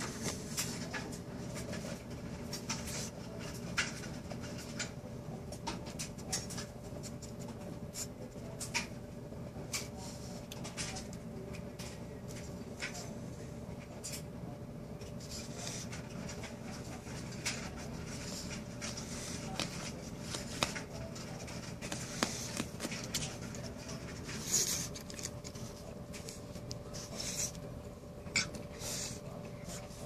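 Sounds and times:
dog sniffing: 0:21.5 - 0:27.8, 0:28.4 - 0:30.0.

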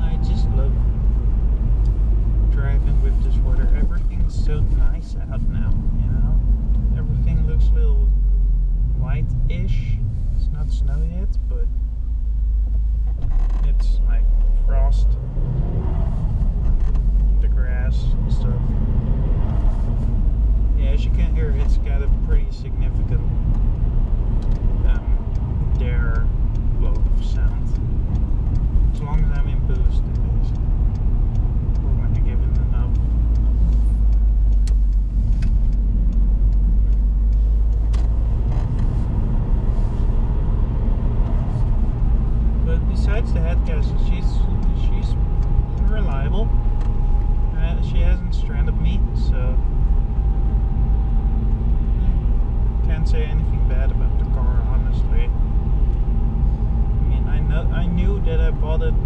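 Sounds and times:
car engine and road rumble: 0:00.0 - 0:59.0.

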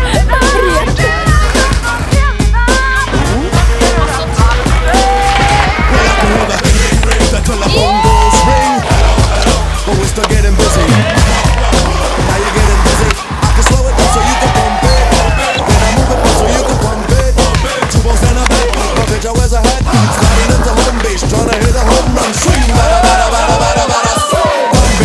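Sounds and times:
hip-hop music: 0:00.0 - 0:25.0
skateboard clacks: 0:08.6 - 0:22.9.

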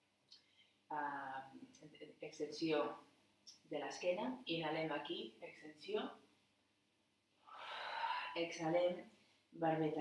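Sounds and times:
woman breathing in: 0:07.4 - 0:08.4.

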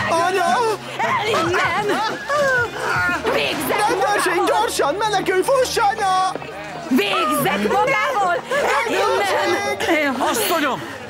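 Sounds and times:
people talking in agitated voices: 0:00.0 - 0:11.0.

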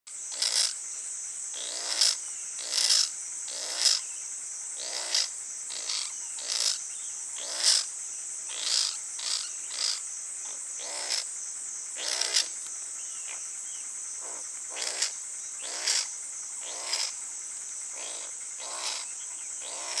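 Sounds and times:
high-pitched insect drone: 0:00.1 - 0:20.0
ferret-badger calling: 0:08.5 - 0:10.0, 0:10.8 - 0:11.2, 0:12.0 - 0:12.5, 0:14.2 - 0:17.1, 0:18.0 - 0:20.0.

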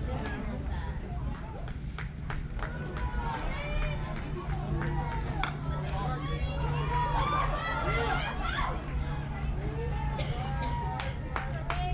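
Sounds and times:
steady low rumble: 0:00.0 - 0:11.9
crowd voices calling out: 0:02.6 - 0:11.9.

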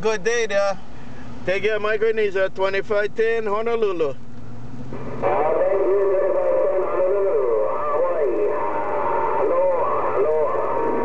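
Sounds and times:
man's voice over radio receiver: 0:05.2 - 0:11.0.

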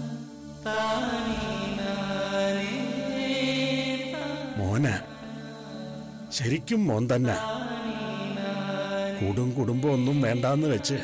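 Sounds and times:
chant-like singing: 0:00.0 - 0:11.0
low drone: 0:00.0 - 0:11.0.

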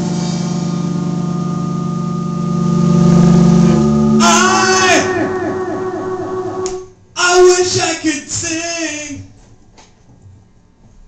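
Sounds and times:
band holding droning chord: 0:00.0 - 0:07.1.

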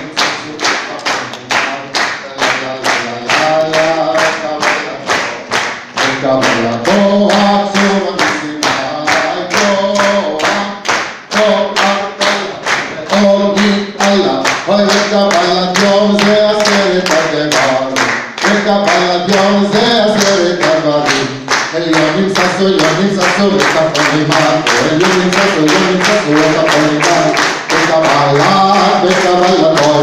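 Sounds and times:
audience clapping along: 0:00.0 - 0:30.0
man singing into a microphone: 0:00.0 - 0:30.0.

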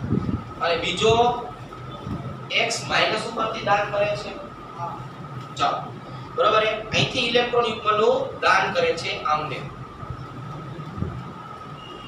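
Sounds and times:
faint hum: 0:00.0 - 0:12.0.

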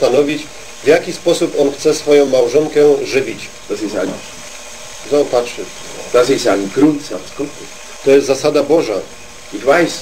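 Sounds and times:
man speaking: 0:00.0 - 0:04.4, 0:05.0 - 0:10.0
low background noise: 0:00.0 - 0:10.0.

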